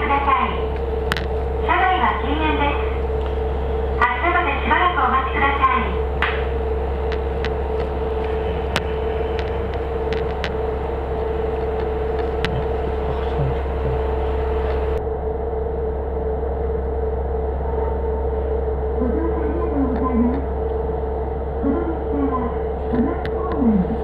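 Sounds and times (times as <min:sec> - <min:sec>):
diesel railcar idling: 0:00.0 - 0:24.0.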